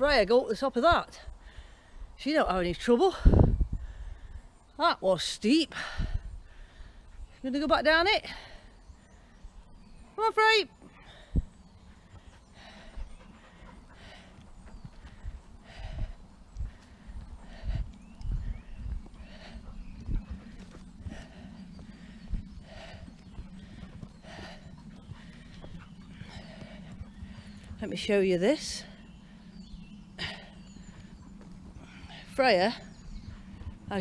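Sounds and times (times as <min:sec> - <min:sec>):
person breathing hard: 0:01.4 - 0:02.1, 0:05.7 - 0:07.2, 0:10.9 - 0:27.8
footsteps on soft ground: 0:07.2 - 0:34.0.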